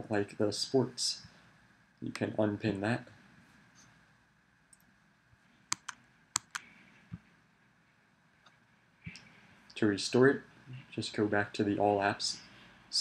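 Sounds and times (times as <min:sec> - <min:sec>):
computer mouse buttons clicking: 0:05.7 - 0:06.7.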